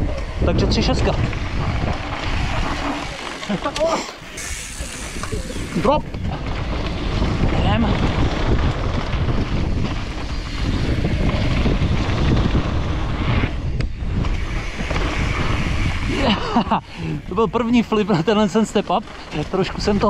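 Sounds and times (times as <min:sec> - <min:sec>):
bike tyres rolling on dirt: 0:00.0 - 0:20.0
wind noise on microphone: 0:00.0 - 0:20.0.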